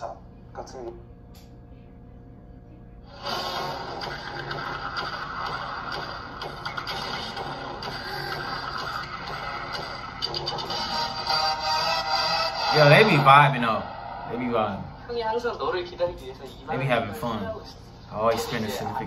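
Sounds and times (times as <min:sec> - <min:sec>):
music: 0:05.5 - 0:13.3.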